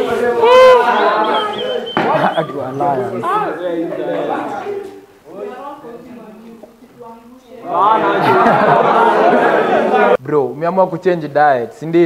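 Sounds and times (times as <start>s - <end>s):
students chattering: 0.0s - 10.2s.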